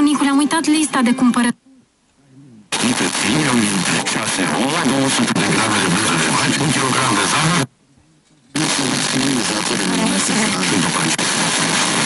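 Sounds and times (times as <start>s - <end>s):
radio static hiss: 0.0s - 12.0s
radio speech: 2.3s - 12.0s.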